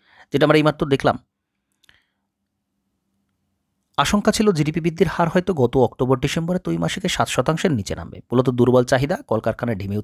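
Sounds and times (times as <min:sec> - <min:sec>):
man speaking: 0:00.3 - 0:01.3, 0:04.0 - 0:10.0.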